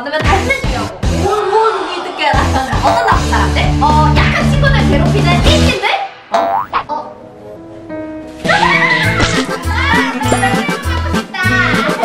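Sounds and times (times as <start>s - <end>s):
cute background music: 2.4s - 5.8s, 6.4s - 12.0s
cartoon boing sound effect: 2.8s - 3.3s, 6.3s - 6.9s.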